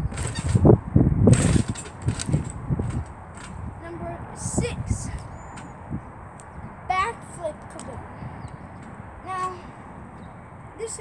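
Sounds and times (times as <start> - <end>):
trampoline bouncing thuds: 0.0 - 6.1.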